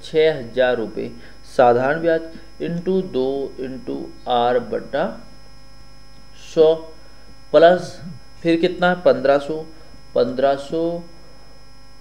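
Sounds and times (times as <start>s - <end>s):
electrical hum with high whine: 0.0s - 12.0s
man saying a word: 7.6s - 8.2s.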